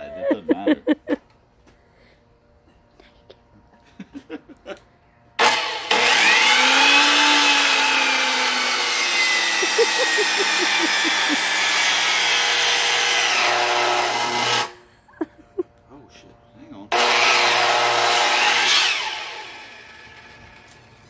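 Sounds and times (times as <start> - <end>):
miter saw cutting wood: 5.4 - 14.8, 16.9 - 21.0.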